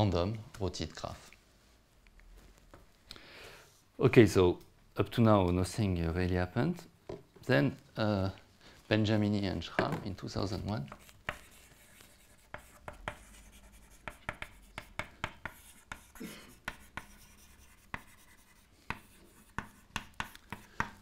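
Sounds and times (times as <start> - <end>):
chalk tapping and scratching: 10.5 - 21.0.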